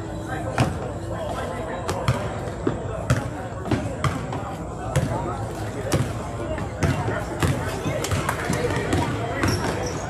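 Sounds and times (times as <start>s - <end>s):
basketball bouncing on gym floor: 3.1s - 4.2s.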